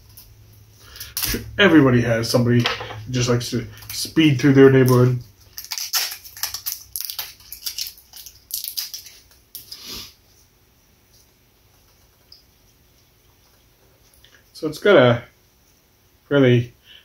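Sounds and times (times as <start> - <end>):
plastic seal crinkling: 3.7 - 9.8.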